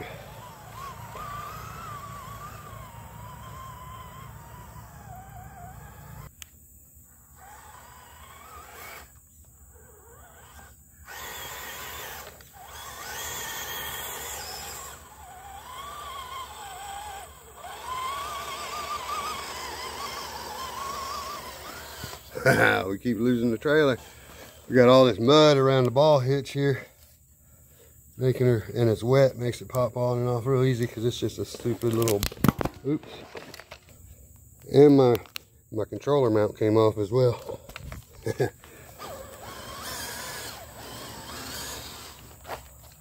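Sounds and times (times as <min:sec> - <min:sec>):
electric motor and gears whining: 0:00.0 - 0:06.5, 0:07.1 - 0:26.0, 0:28.3 - 0:35.4, 0:36.0 - 0:43.0.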